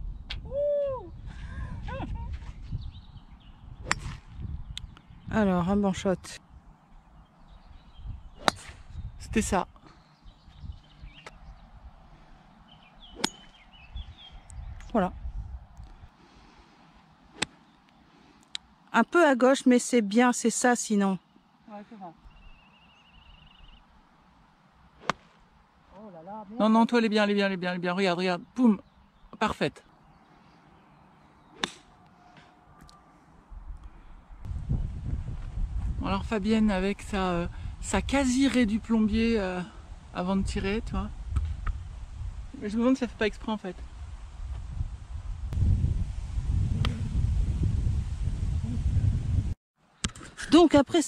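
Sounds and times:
golf club striking ball: 3.8 - 4.3, 8.4 - 8.8, 13.1 - 13.7, 17.3 - 17.6, 25.0 - 25.4, 31.6 - 32.0.

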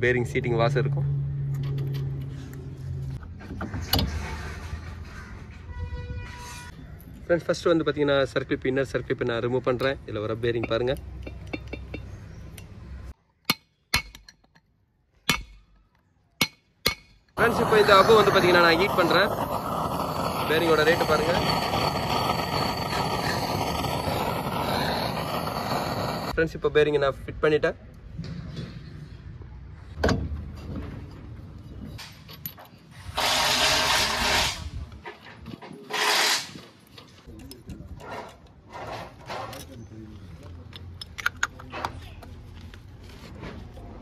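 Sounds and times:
hammer striking metal: 13.4 - 14.5, 15.3 - 15.7, 16.4 - 17.2
pneumatic air tool bursts: 17.4 - 26.3, 33.0 - 34.8, 35.9 - 36.7.

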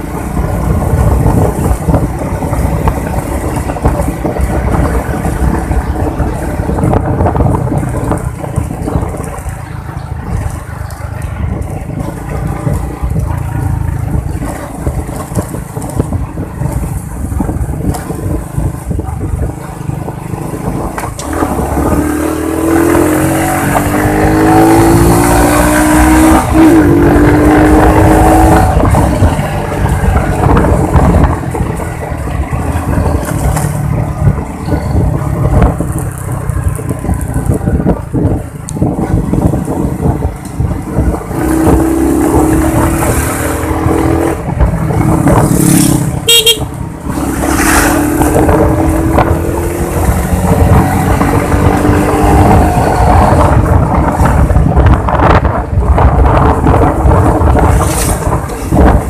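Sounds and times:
motorcycle engine accelerating: 0.0 - 59.0
wind rushing over microphone: 0.0 - 59.0.

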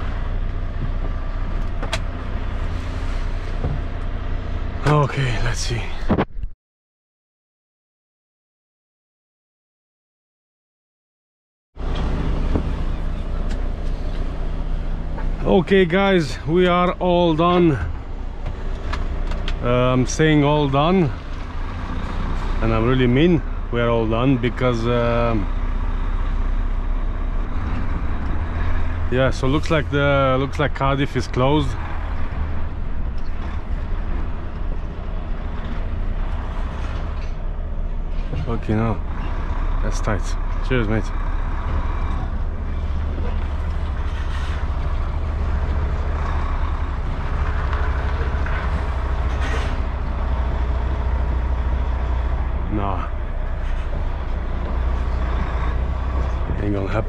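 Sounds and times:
diesel engine running: 0.0 - 6.1, 11.8 - 57.0.

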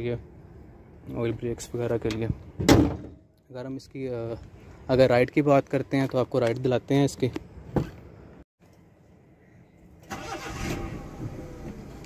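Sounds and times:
car starter cranking: 10.0 - 11.9.

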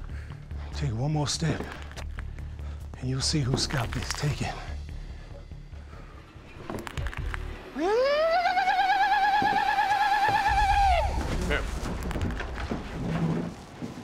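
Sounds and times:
background music: 0.0 - 14.0
high wavering scream: 7.8 - 11.3.

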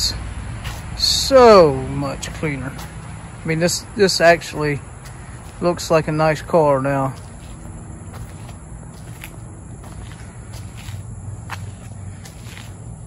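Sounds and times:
footsteps on pavement: 0.0 - 13.0.

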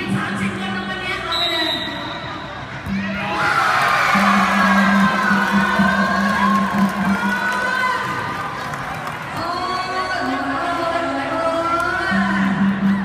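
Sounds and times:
crowd cheering and shouting: 2.2 - 11.6.

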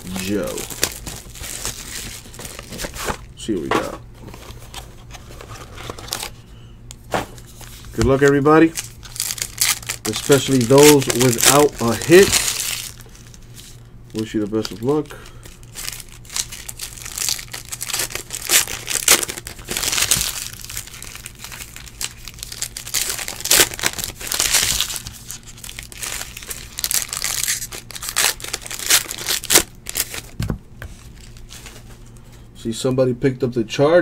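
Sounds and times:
foil wrapper tearing and crinkling: 0.0 - 3.2, 7.6 - 30.4.

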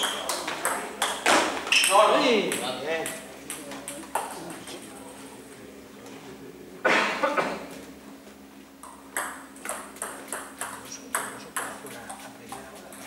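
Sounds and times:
table tennis ball clicks: 8.8 - 12.2.

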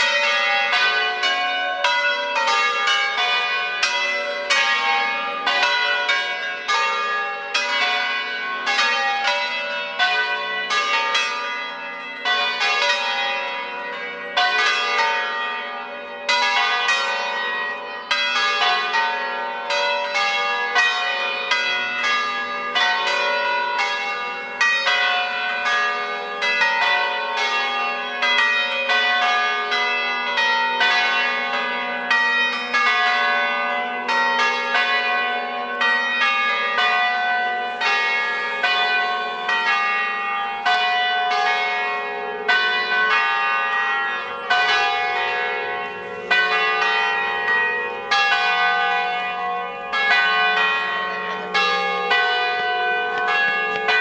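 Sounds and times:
church bells ringing: 0.0 - 54.0.

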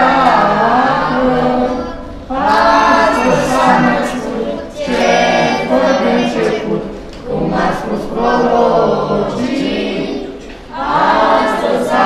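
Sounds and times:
children singing carol unaccompanied: 0.0 - 12.0.

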